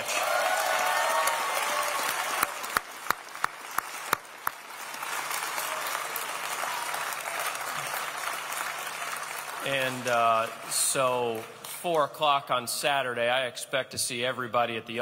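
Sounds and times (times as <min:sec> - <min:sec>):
loud even hand claps: 0:00.0 - 0:10.7
people cheering: 0:00.0 - 0:11.4
crowd applauding: 0:00.0 - 0:11.7.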